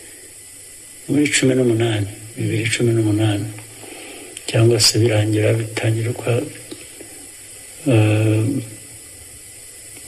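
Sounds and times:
low background hiss: 0:00.0 - 0:10.0
man's voice: 0:07.8 - 0:08.7.

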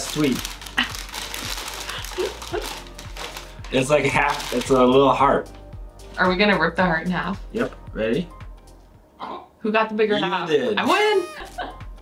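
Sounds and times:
paper bag crinkling and rustling: 0:00.0 - 0:05.1
people laughing: 0:10.9 - 0:11.8.

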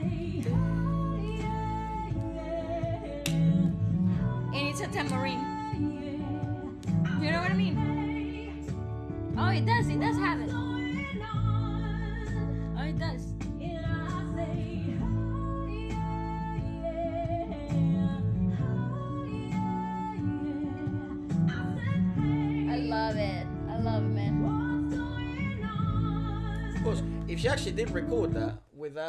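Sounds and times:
woman singing: 0:00.0 - 0:27.2.

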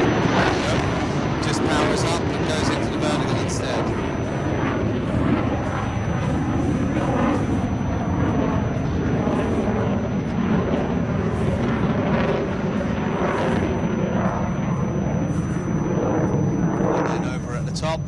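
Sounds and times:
jet engine roar: 0:00.0 - 0:18.0.

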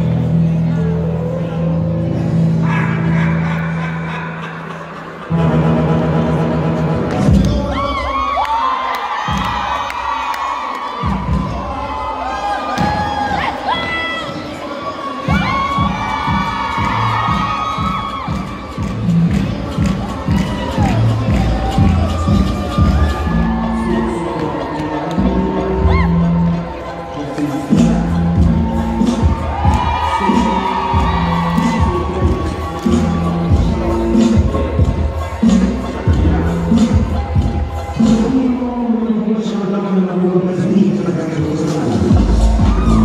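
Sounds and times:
dance music: 0:00.0 - 0:43.0
children shouting and cheering: 0:07.4 - 0:38.9, 0:42.2 - 0:43.0.

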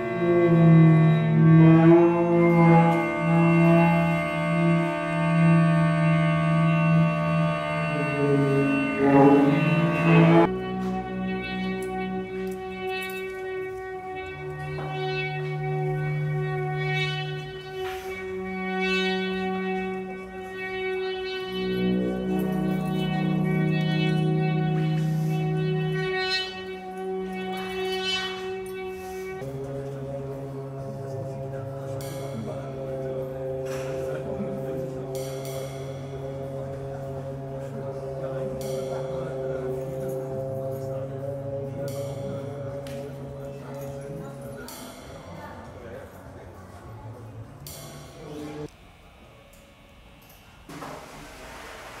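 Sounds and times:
sustained low note: 0:00.0 - 0:48.7
brass drums and guitar droning: 0:00.0 - 0:48.9
low held tones: 0:00.0 - 0:49.8.

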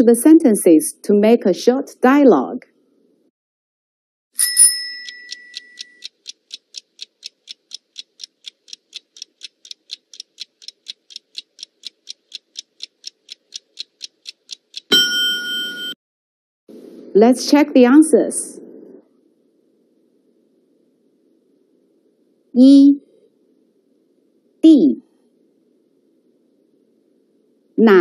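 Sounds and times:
chime: 0:04.4 - 0:06.0, 0:14.9 - 0:16.0
short alarm ring: 0:04.4 - 0:06.0, 0:14.9 - 0:16.0
clock ticking: 0:04.6 - 0:15.9.

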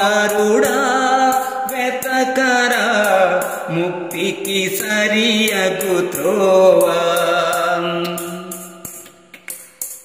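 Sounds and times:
man singing devotional song: 0:00.0 - 0:09.3
musical accompaniment: 0:00.0 - 0:10.0.

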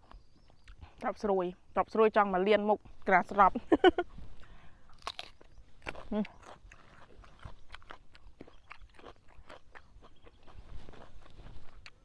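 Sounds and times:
chewing crisp vegetables: 0:00.0 - 0:01.3, 0:04.0 - 0:12.0.

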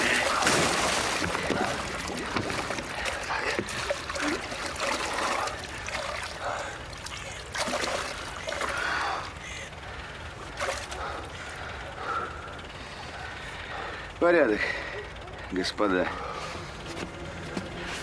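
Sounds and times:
water splashing and sloshing: 0:00.0 - 0:11.5.

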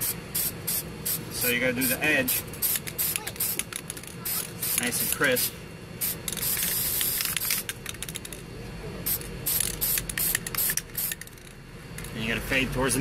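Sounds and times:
spray paint can hissing: 0:00.0 - 0:08.2, 0:09.0 - 0:11.5.

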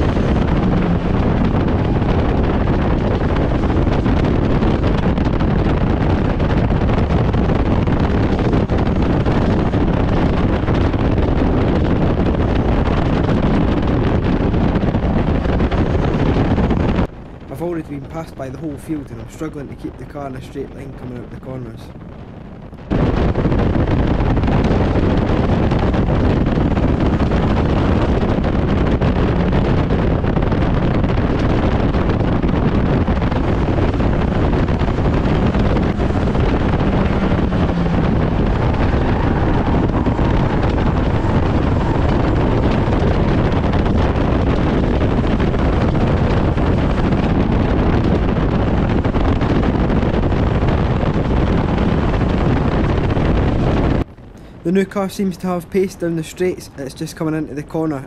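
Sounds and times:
race car engine running hard: 0:00.0 - 0:17.1, 0:24.5 - 0:49.7
wind buffeting on microphone: 0:00.0 - 0:58.0.

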